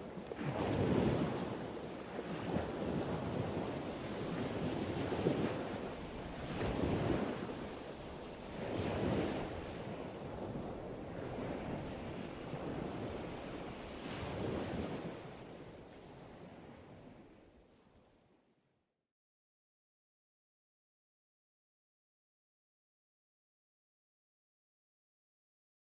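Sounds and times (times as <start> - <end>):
ocean surf: 0.0 - 17.3
wind on microphone: 0.0 - 17.4.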